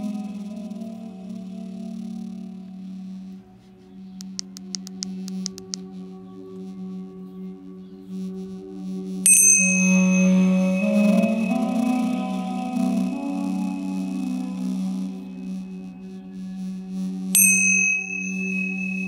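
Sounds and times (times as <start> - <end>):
duduk music with held drone: 0.0 - 17.5
tingsha cymbals ringing: 9.2 - 16.5, 17.3 - 19.0.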